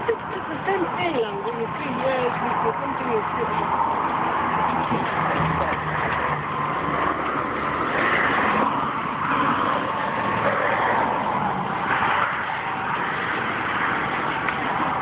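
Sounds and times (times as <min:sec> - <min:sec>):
highway traffic passing: 0:00.0 - 0:15.0.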